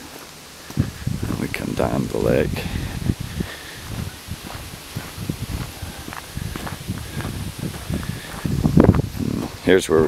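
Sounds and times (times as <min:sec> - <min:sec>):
footsteps on gravel: 0:00.0 - 0:10.0
wind rumbling on microphone: 0:00.6 - 0:10.0.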